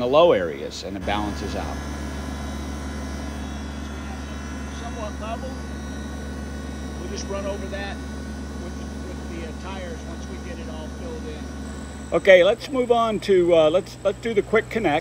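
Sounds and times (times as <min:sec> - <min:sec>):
diesel tractor engine idling: 0:00.0 - 0:15.0.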